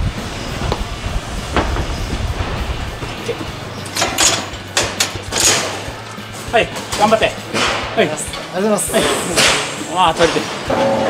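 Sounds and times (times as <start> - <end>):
low mechanical rumble: 0.0 - 6.4.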